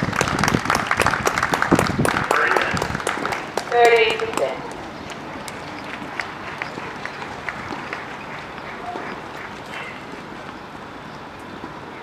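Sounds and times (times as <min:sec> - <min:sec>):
murmur of spectators: 0:01.6 - 0:10.6.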